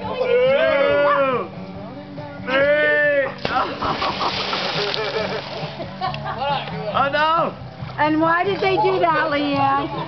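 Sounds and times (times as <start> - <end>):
big splash into pool: 3.4 - 5.9
churning water: 3.4 - 6.2
people laughing: 3.5 - 6.9.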